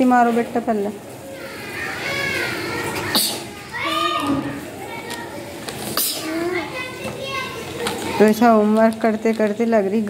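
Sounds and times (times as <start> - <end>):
faint child's voice: 1.3 - 8.2.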